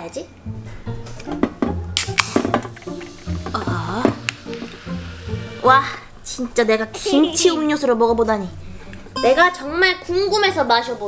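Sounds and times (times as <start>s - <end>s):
background music: 0.0s - 11.0s
drink can cracked open: 2.0s - 4.9s.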